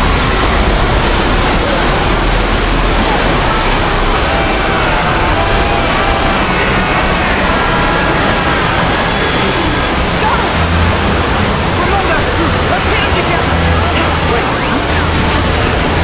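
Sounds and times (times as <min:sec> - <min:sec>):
faint music: 0:00.0 - 0:16.0
voices: 0:00.0 - 0:16.0.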